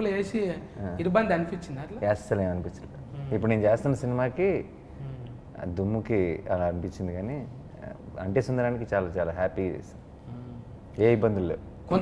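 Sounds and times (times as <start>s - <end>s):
man speaking: 1.9s - 12.0s.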